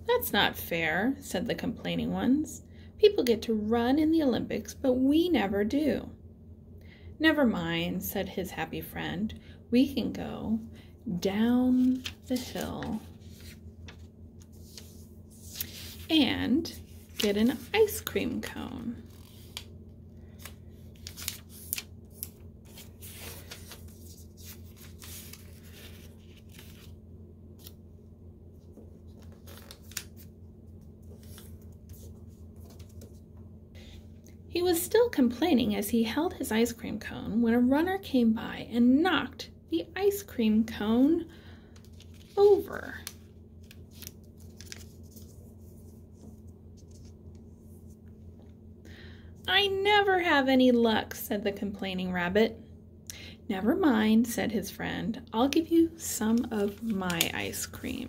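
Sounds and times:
steady low hum: 0.0 - 58.0
paper rustling and crinkling: 11.7 - 27.0, 28.6 - 33.3, 41.8 - 48.1, 56.2 - 57.9.

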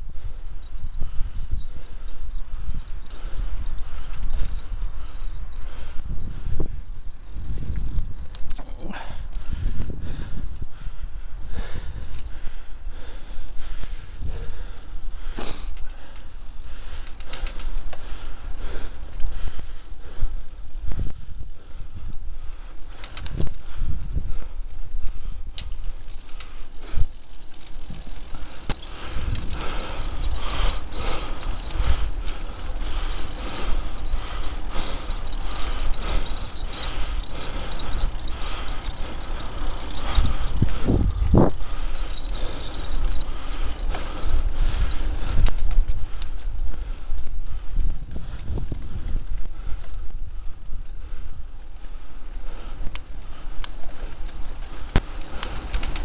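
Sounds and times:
bicycle frame rattling: 0.0 - 56.0
low rumble of tyres: 0.0 - 56.0.

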